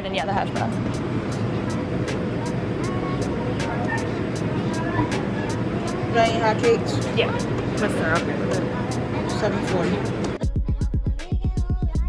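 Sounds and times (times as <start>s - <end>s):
faint voices: 0.0s - 10.4s
low mechanical hum: 0.0s - 12.0s.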